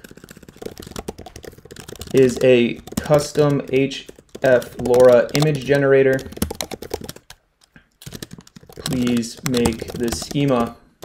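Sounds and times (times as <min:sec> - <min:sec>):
computer keyboard typing: 0:00.0 - 0:10.8.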